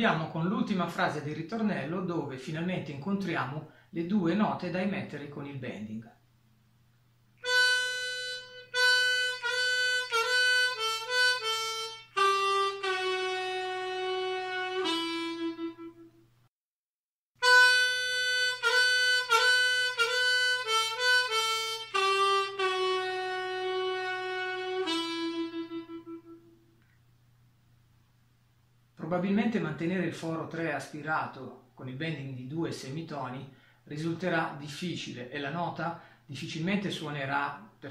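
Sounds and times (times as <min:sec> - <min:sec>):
harmonica melody: 0:07.4 - 0:16.2, 0:17.4 - 0:26.8.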